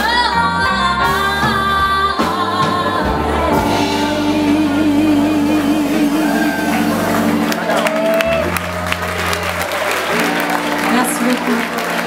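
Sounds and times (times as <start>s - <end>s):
woman singing soul: 0.0s - 7.4s
live band chords: 0.0s - 12.0s.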